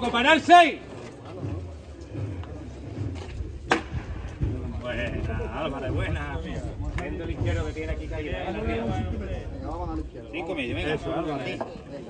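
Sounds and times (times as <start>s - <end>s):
faint voices: 0.0s - 12.0s
shuffling footsteps on asphalt: 0.0s - 12.0s
sharp knock: 3.7s - 4.3s.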